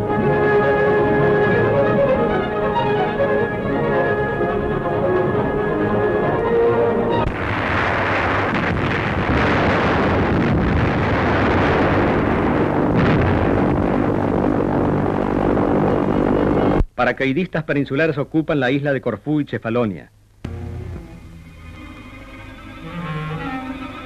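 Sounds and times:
orchestral film music: 0.0 - 7.3, 20.5 - 24.0
bomb explosions: 7.2 - 16.8
gunfire: 7.3 - 14.1.

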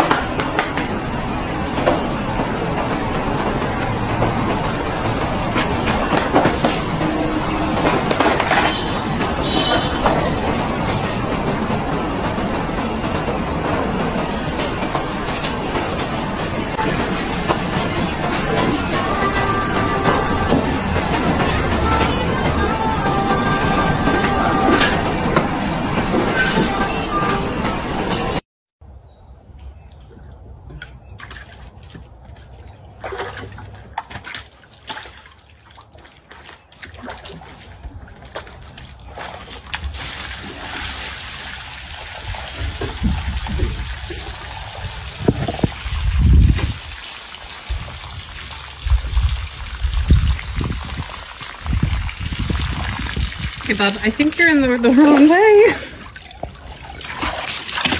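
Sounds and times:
water sloshing in plastic tub: 29.9 - 44.3, 52.3 - 57.9
water spilling onto grass: 38.6 - 57.9.

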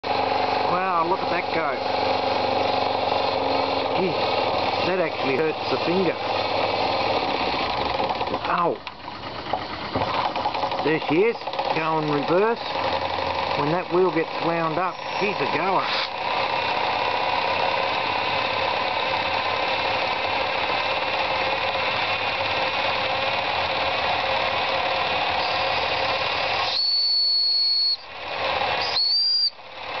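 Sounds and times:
model engine whirring: 0.1 - 30.0
high whistle-like tone: 26.6 - 28.1, 28.8 - 29.6.

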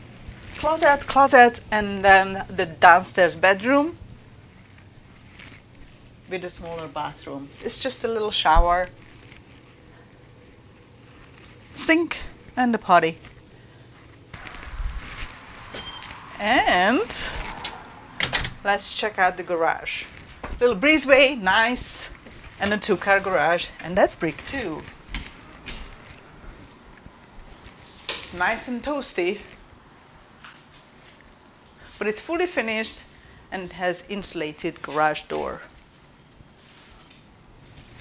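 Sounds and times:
low hum: 0.0 - 27.6
footsteps: 0.0 - 31.8
soft rustling: 0.0 - 38.0.

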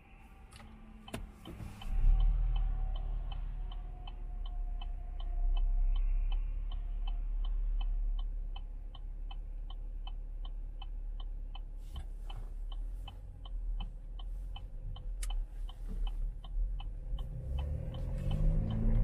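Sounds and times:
turn signal clicking: 0.5 - 19.0.

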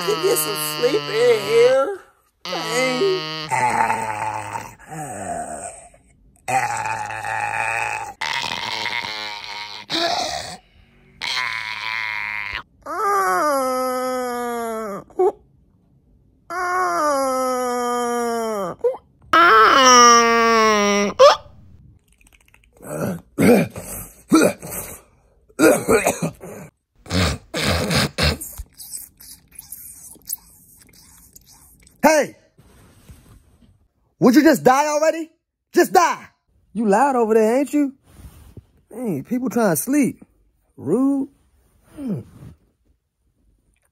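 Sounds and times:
man moaning: 0.0 - 10.6.

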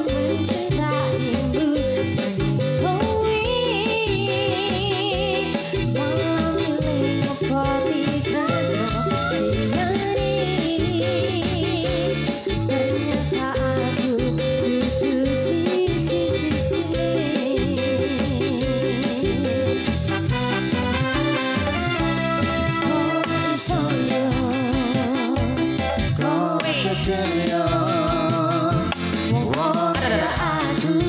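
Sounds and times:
live band playing: 0.0 - 31.0
person singing: 0.0 - 31.0.

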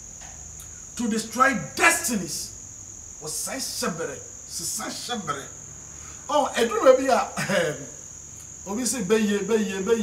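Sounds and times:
man speaking: 1.0 - 2.6, 3.2 - 5.6, 6.3 - 7.9, 8.7 - 10.0.

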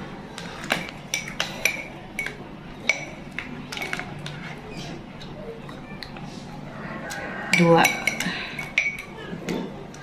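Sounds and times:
utensils clinking against pot: 0.3 - 6.1, 7.1 - 10.0.

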